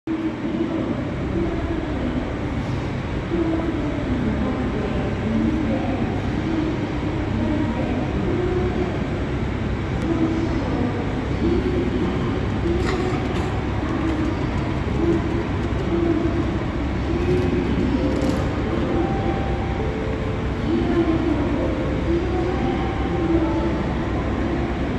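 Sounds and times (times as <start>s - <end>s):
train humming: 0.1s - 24.9s.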